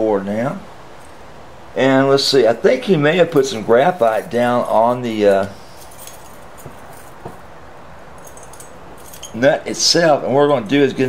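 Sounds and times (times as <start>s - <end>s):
low room noise: 0.0s - 11.0s
hand tools clicking: 8.2s - 9.5s.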